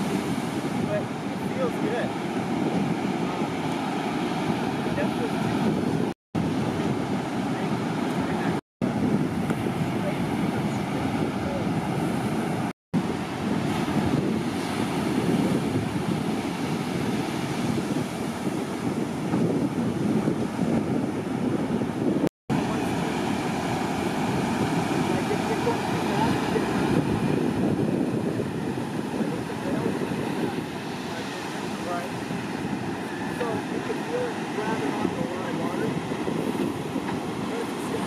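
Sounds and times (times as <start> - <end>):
breaking surf: 0.0 - 38.0
wind on microphone: 0.0 - 38.0.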